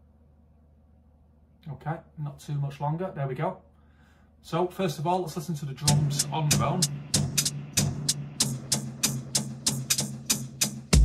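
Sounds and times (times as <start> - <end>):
hip-hop drum beat: 5.8 - 11.0
heavy kick drum: 5.9 - 11.0.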